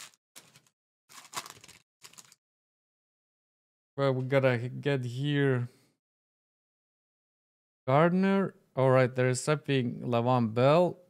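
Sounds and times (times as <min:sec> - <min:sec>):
foil wrapper crinkling rips: 0:00.0 - 0:02.4.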